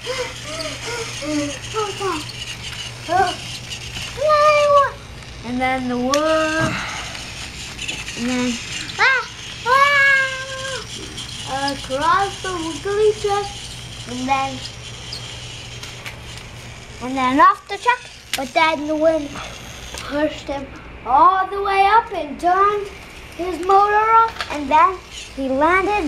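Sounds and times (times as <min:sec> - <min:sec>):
young child vocalizing: 0:00.0 - 0:02.3
toy train motor whir: 0:00.0 - 0:26.0.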